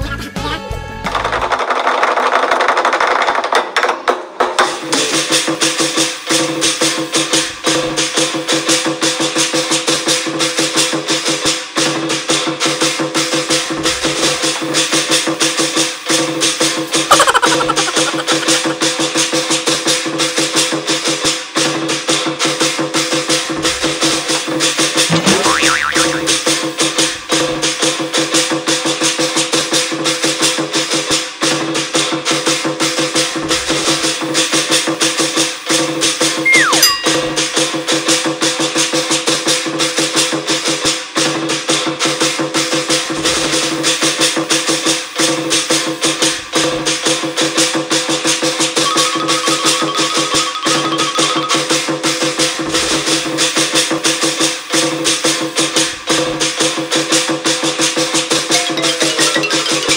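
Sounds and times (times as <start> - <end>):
clashing cymbals and drum: 4.0 - 25.6, 26.2 - 59.9
steady held tones: 36.5 - 37.9, 48.8 - 52.3, 58.5 - 59.9.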